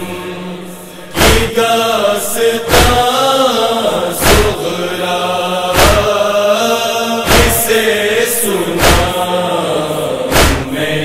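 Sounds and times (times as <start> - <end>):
mournful unaccompanied chanting: 0.0 - 11.0
sharp chest beats: 1.2 - 1.6, 5.8 - 6.1, 7.3 - 7.7, 8.8 - 9.2, 10.3 - 10.8.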